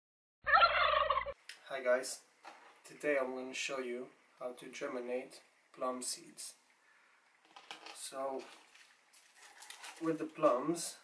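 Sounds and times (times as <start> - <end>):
turkey gobbling: 0.5 - 1.4.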